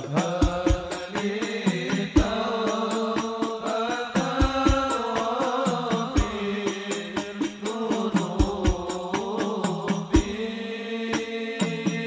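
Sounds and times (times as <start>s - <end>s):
frame drums beating: 0.0s - 10.5s
men chanting devotional song: 0.0s - 12.0s.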